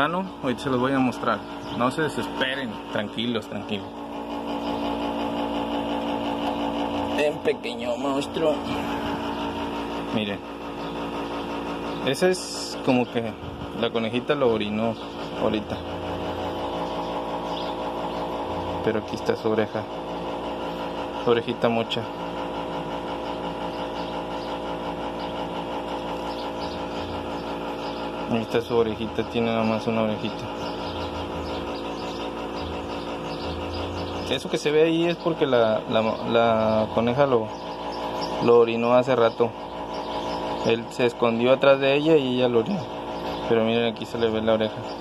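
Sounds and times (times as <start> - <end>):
machine humming: 0.0 - 45.0.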